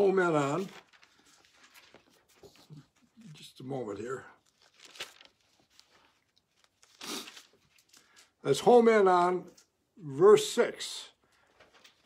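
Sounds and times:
pages being leafed through: 0.0s - 2.8s, 4.4s - 8.3s, 11.5s - 12.0s.

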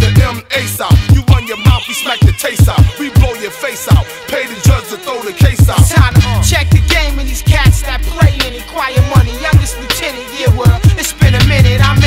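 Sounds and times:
deep kick drum beat: 0.0s - 4.1s, 5.4s - 12.0s
person rapping: 0.0s - 12.0s.

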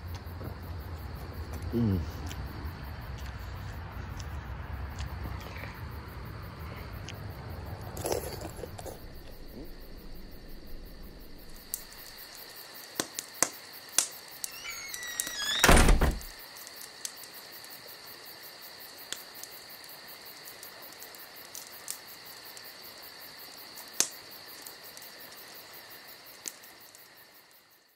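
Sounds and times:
crickets chirping: 0.0s - 27.9s.

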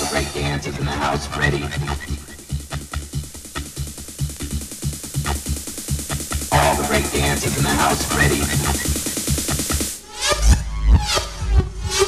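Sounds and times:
electronic breakbeat dance music: 0.0s - 12.0s.

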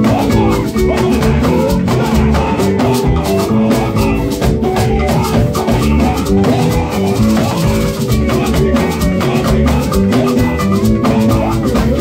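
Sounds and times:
live band playing upbeat music: 0.0s - 12.0s.

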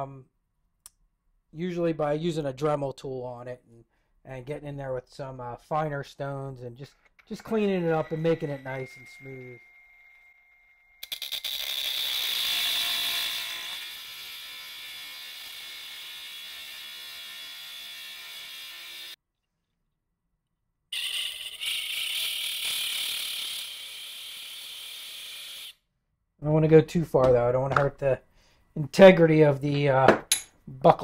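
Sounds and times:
cut-off saw cutting metal: 7.2s - 19.2s, 21.0s - 25.7s.

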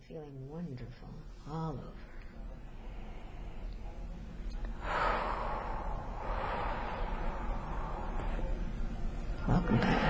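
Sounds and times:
person breathing deeply: 2.4s - 4.0s, 4.8s - 8.8s.

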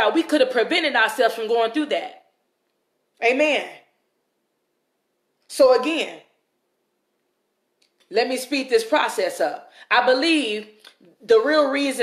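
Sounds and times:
woman speaking: 0.0s - 2.3s, 3.2s - 4.0s, 5.5s - 6.4s, 8.1s - 12.0s.

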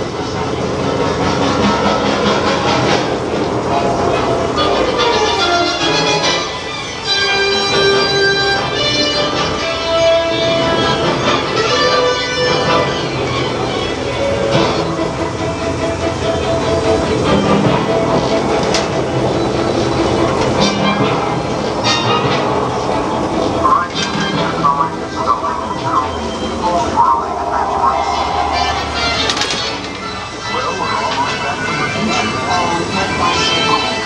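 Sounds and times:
soundtrack music: 24.0s - 31.0s
rumbling rush of sound effects: 24.5s - 31.5s.

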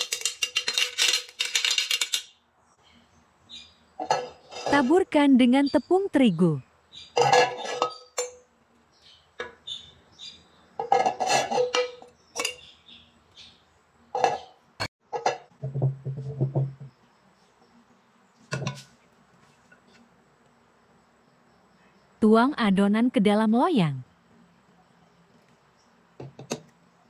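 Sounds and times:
metal sieve rattling and clinking: 0.0s - 2.3s
metal pan knocks and thuds: 15.1s - 16.9s, 18.5s - 18.9s.

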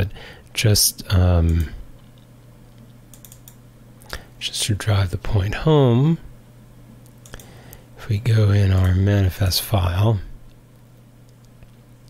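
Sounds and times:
low electrical hum: 0.0s - 12.0s
computer keyboard keystrokes: 3.1s - 3.6s.

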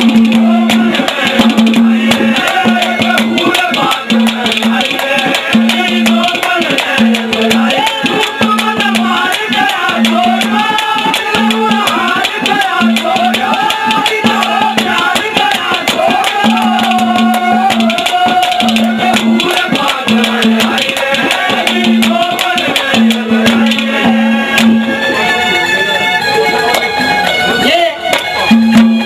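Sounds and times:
fast hand drums: 0.0s - 25.2s, 26.2s - 29.0s
jingling percussion: 0.0s - 29.0s
melody bending in pitch: 24.2s - 29.0s.

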